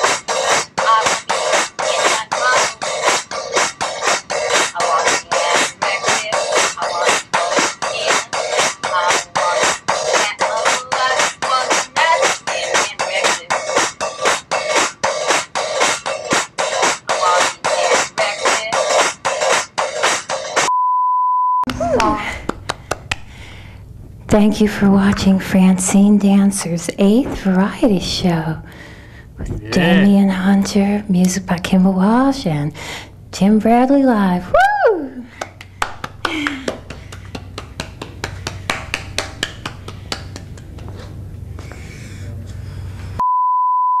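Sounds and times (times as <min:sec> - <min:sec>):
music: 0:00.0 - 0:20.7
steady electronic beep tone: 0:20.7 - 0:21.7, 0:43.2 - 0:44.0
person speaking: 0:29.4 - 0:31.2.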